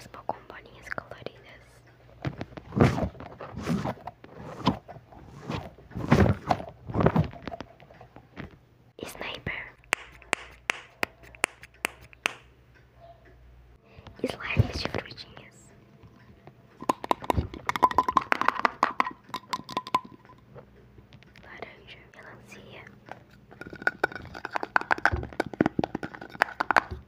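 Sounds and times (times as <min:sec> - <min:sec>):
person whispering: 0:00.0 - 0:01.9, 0:09.0 - 0:09.9, 0:14.1 - 0:15.8, 0:21.4 - 0:23.0
fidget toys clicking and tapping: 0:09.2 - 0:12.5, 0:16.8 - 0:20.4, 0:23.5 - 0:27.0.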